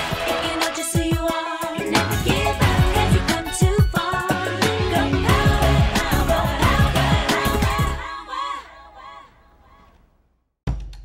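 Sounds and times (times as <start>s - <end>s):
woman singing with echo: 0.4s - 9.9s.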